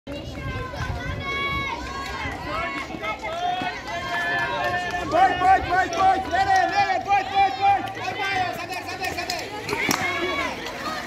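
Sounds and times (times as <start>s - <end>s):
people shouting encouragement: 0.2s - 11.0s.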